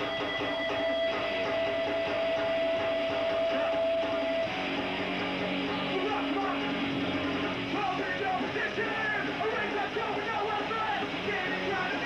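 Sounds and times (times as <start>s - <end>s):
punk band playing loud: 0.0s - 12.0s.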